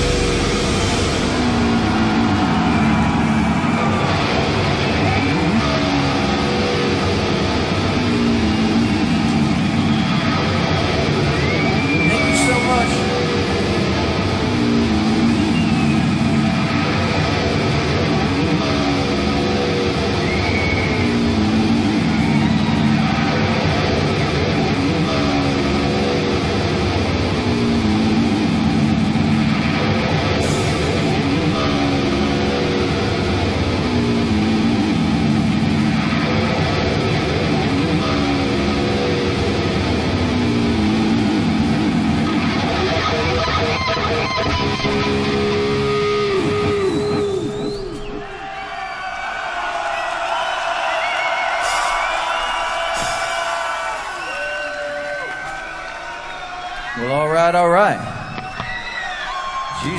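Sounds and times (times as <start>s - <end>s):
heavy rock band playing live: 0.0s - 48.2s
sliding high guitar notes: 0.0s - 48.3s
distorted electric guitar riff: 0.0s - 48.4s
falling guitar slide: 51.6s - 55.8s.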